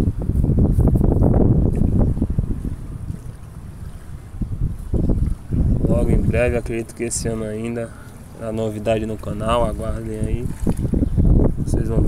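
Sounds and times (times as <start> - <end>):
wind buffeting microphone: 0.0 - 12.0
water splashing: 1.3 - 11.4.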